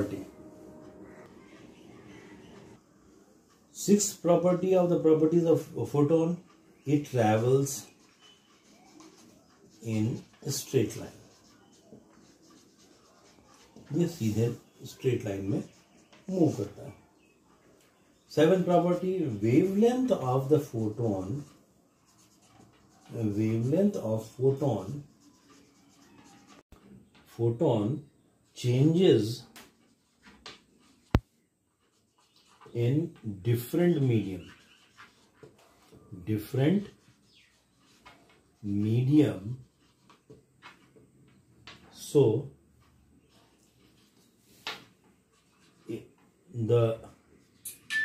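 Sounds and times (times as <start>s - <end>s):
man speaking: 0.0s - 0.5s, 3.8s - 7.9s, 9.8s - 11.2s, 13.9s - 15.7s, 16.3s - 17.0s, 23.1s - 25.1s, 28.6s - 29.5s, 32.7s - 34.5s, 36.1s - 37.0s, 38.6s - 39.6s, 42.0s - 42.6s, 45.9s - 47.2s
marker pen on whiteboard: 0.0s - 48.0s.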